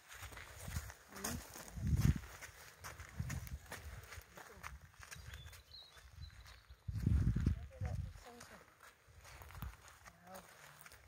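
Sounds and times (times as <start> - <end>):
boots crunching on gravel: 0.0 - 11.0
horse hooves on gravel: 0.0 - 11.0.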